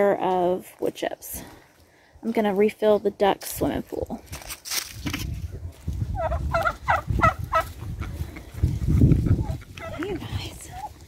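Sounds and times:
turkey calling: 6.2s - 8.5s, 9.2s - 11.0s.

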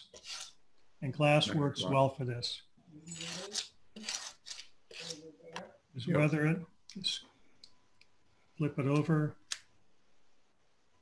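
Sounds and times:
wire brush rasping on wood: 0.0s - 0.6s.

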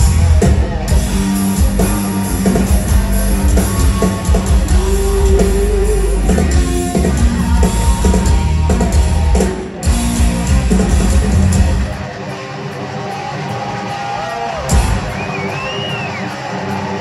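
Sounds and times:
bass guitar: 0.0s - 12.4s
distorted electric guitars: 0.0s - 17.0s
drum kit: 0.0s - 17.0s.

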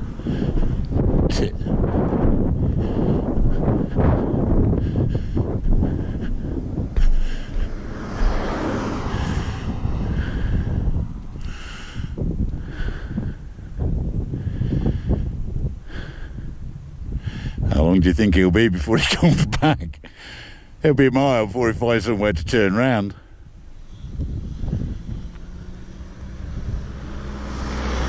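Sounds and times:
vehicle passing: 0.0s - 15.3s, 23.2s - 28.0s
wind buffeting microphone: 0.0s - 28.0s.

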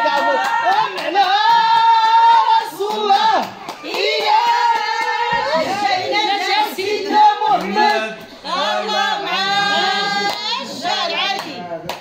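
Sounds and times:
hands clapping: 0.0s - 5.8s, 7.5s - 8.1s, 10.3s - 10.6s, 11.3s - 12.0s
voices singing along: 0.0s - 12.0s.

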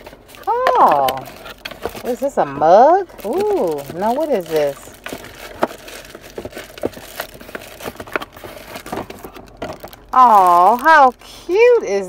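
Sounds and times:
cardboard box rustling: 0.0s - 11.7s
plastic bag crinkling: 0.0s - 12.0s.

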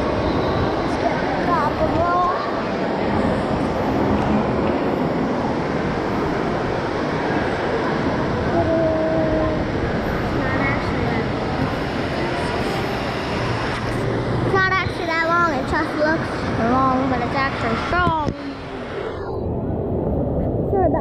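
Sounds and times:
crowd of voices: 0.0s - 21.0s.

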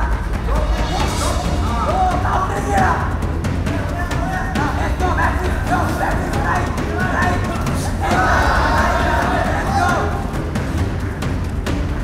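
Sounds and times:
background music with low bass: 0.0s - 12.0s
spectators shouting and yelling: 5.0s - 10.4s.

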